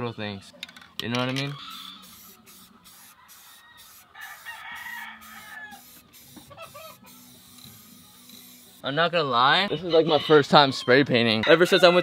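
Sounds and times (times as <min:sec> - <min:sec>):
distant rooster crowing: 0:03.0 - 0:06.0, 0:11.4 - 0:12.0.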